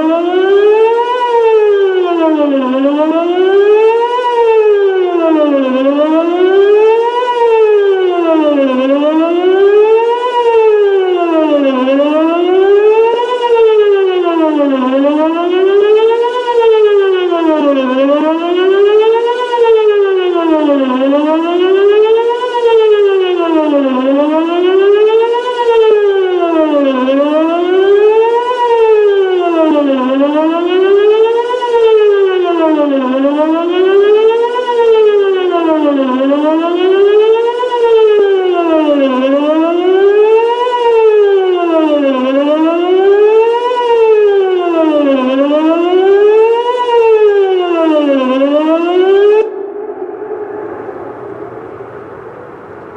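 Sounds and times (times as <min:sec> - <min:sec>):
warning siren wailing: 0:00.0 - 0:52.9.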